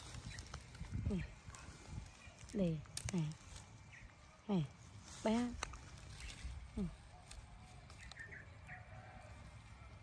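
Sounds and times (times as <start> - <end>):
rustling leaves and branches: 0.0 - 10.0.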